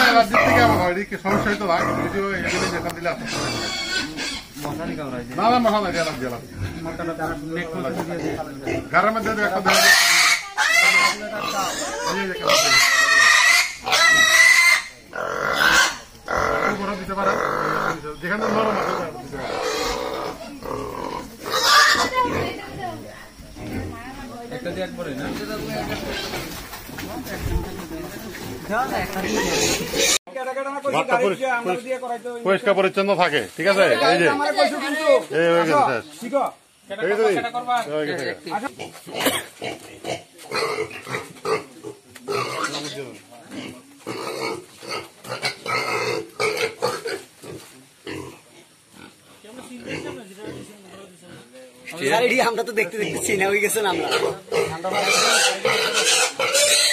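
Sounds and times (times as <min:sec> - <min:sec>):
young pig squealing: 0:00.0 - 0:04.5, 0:09.6 - 0:22.6, 0:29.2 - 0:30.2, 0:53.9 - 0:56.9.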